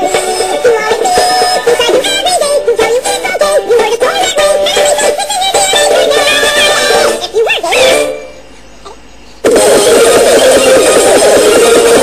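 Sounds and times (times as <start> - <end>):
loud fast rhythmic music: 9.4 - 12.0.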